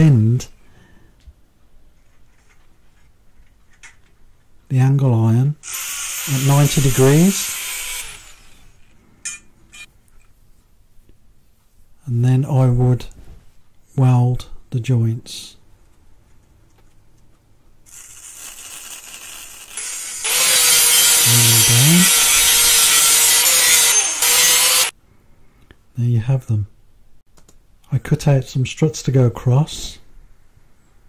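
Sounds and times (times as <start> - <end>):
angle grinder grinding steel: 5.6 - 8.9, 17.9 - 24.9.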